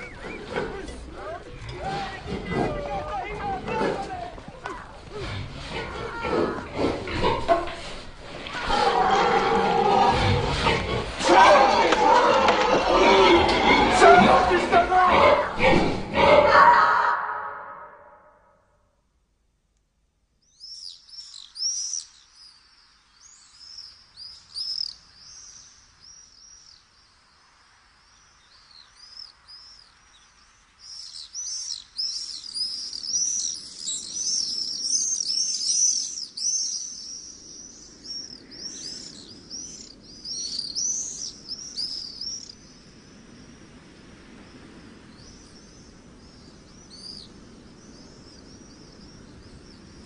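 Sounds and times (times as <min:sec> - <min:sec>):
small birds chirping: 0:00.0 - 0:15.6, 0:20.4 - 0:50.0
faint low background noise: 0:00.0 - 0:50.0.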